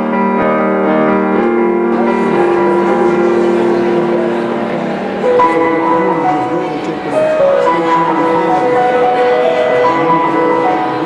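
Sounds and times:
sustained keyboard chord: 0:00.0 - 0:11.0.

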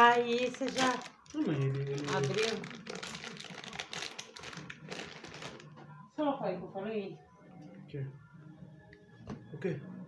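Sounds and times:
plastic bag crinkling: 0:00.0 - 0:05.8.

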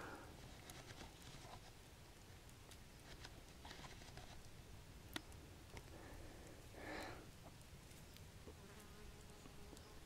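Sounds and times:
flying insect buzzing: 0:08.5 - 0:10.0.

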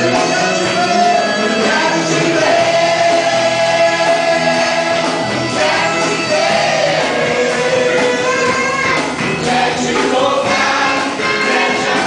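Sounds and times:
electric bass guitar: 0:00.0 - 0:12.0
gospel band with singers: 0:00.0 - 0:12.0.

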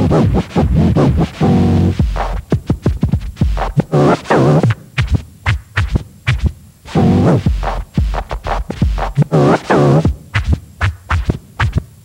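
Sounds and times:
vinyl record scratching: 0:00.0 - 0:12.0.

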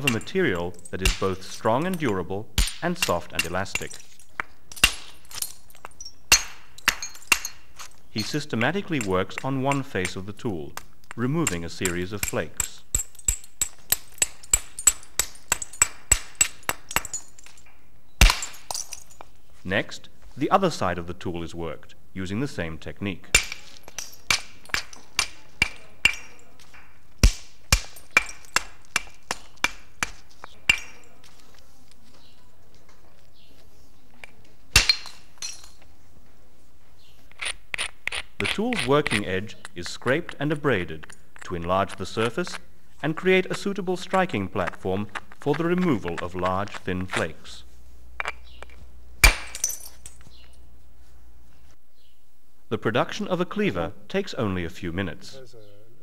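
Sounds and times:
antler striking stone crack: 0:00.0 - 0:19.2, 0:23.3 - 0:31.4, 0:34.2 - 0:35.8, 0:48.2 - 0:50.3
light stone clinks: 0:00.0 - 0:19.5, 0:23.3 - 0:36.0, 0:37.0 - 0:42.6, 0:48.2 - 0:50.7.

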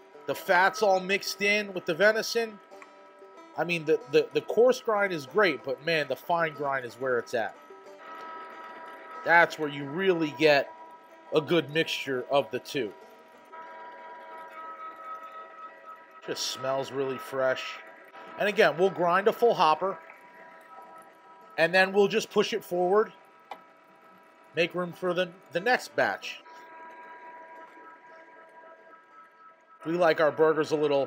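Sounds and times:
electric meat grinder whining: 0:00.0 - 0:30.2.

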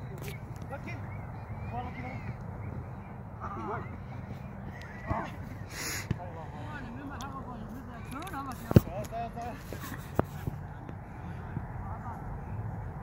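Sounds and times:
distant players shouting: 0:00.7 - 0:06.9.

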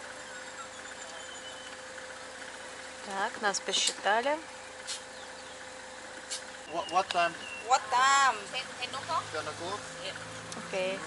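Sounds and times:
car idling hum: 0:00.0 - 0:11.0
faint constant whine: 0:00.0 - 0:11.0.

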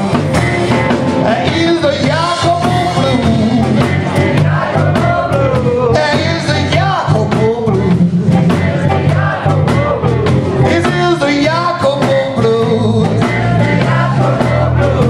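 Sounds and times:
blues band playing loudly: 0:00.0 - 0:15.0.

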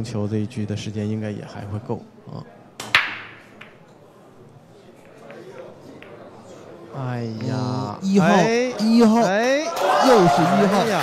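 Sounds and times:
billiard balls clattering: 0:02.8 - 0:04.0, 0:04.9 - 0:07.6
cue ball cracking into racked balls: 0:02.8 - 0:04.0, 0:05.0 - 0:07.6
cue tapping cue ball: 0:02.8 - 0:04.0, 0:04.8 - 0:07.6.

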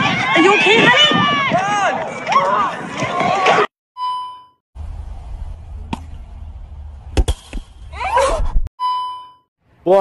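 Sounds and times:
wind buffeting microphone: 0:00.0 - 0:03.6.

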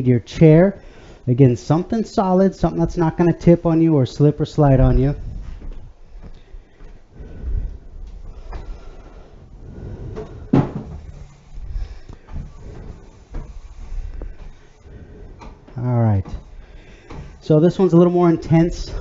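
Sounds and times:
footsteps on hardwood floor: 0:01.7 - 0:19.0
wooden chair knocking on floor: 0:10.5 - 0:11.0.

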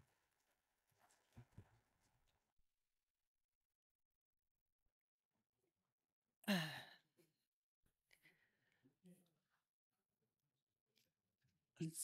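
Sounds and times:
person sighing: 0:06.4 - 0:07.0.

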